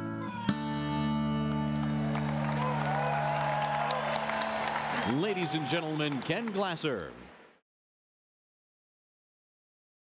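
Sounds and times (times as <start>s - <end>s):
crowd applauding and cheering: 1.4s - 7.6s.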